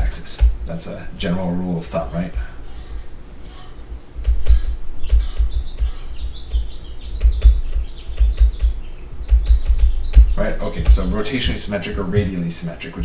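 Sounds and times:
stylus squeaking: 1.9 - 12.4
stylus tapping on a tablet: 4.2 - 11.3.

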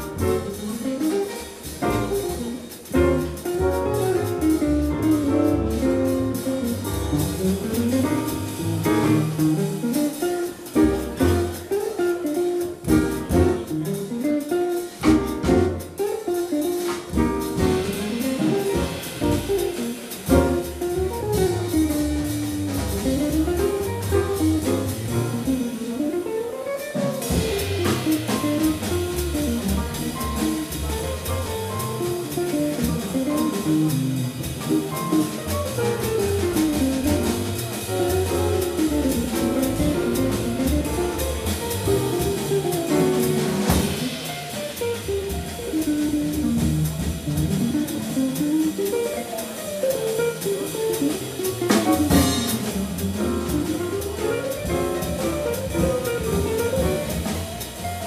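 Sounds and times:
drum kit with ride cymbal: 0.0 - 58.0
jazz guitar melodic runs: 0.0 - 58.0
piano: 0.0 - 58.0
walking upright bass: 0.0 - 58.0.

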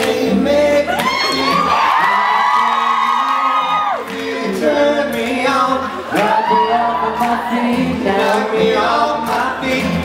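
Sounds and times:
acoustic guitar pop song: 0.0 - 10.0
audience screaming and whooping: 0.8 - 4.6, 5.9 - 7.9.

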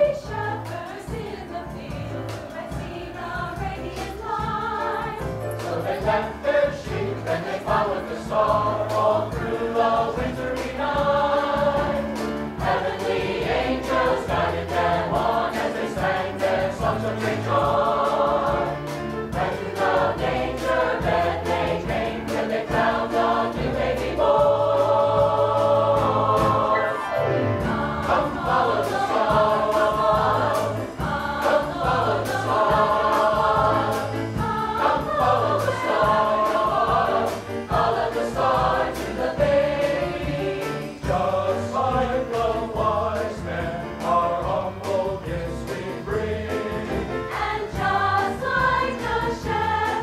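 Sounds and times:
mixed choir singing: 0.0 - 50.0.

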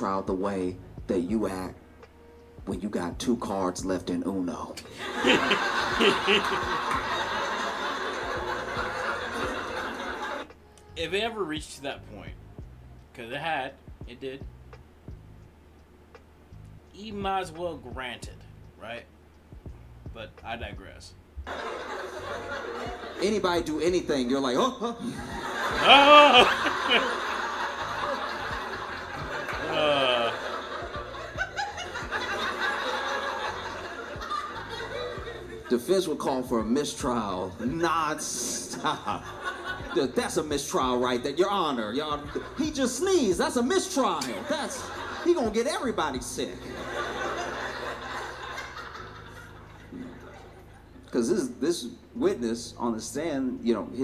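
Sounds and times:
audience laughing: 4.9 - 10.5, 21.5 - 23.2, 25.1 - 35.7, 38.5 - 40.1, 44.3 - 45.4, 46.6 - 51.0
man chuckling: 5.2 - 6.7, 25.0 - 27.2, 29.5 - 30.7.

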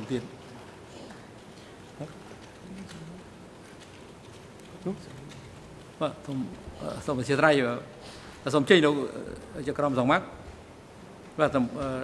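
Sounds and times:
microphone hiss and buzz: 0.0 - 12.0.

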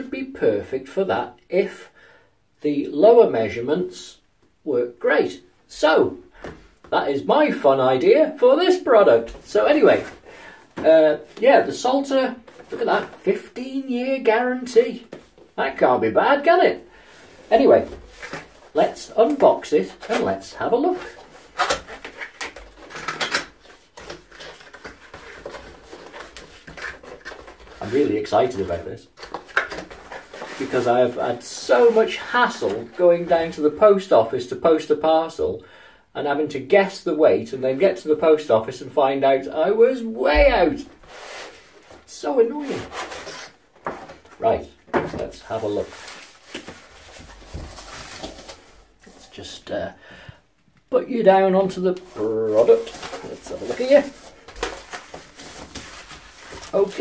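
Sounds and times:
cardboard crackles: 17.5 - 31.2, 41.0 - 49.3, 51.7 - 57.0
cardboard box rustling and scraping: 42.6 - 44.2, 45.5 - 48.9, 52.0 - 57.0.

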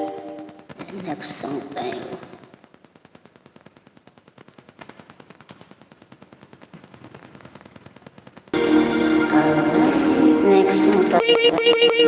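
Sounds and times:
fast run of faint clicks: 0.4 - 8.6.

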